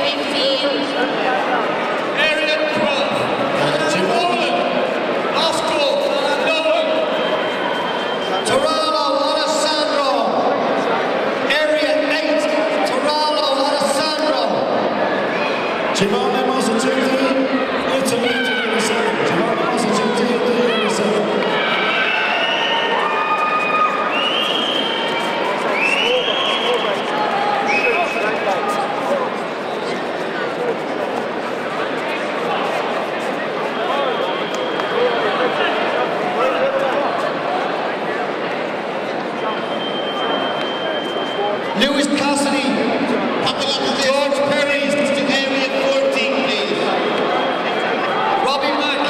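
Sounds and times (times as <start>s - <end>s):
many voices talking and shouting: 0.0s - 49.0s
spectators cheering: 17.0s - 29.9s, 33.6s - 37.9s, 45.4s - 49.0s.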